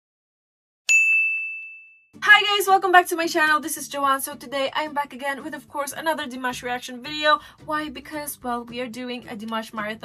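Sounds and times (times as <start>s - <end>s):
bell-like ding: 0.9s - 2.1s.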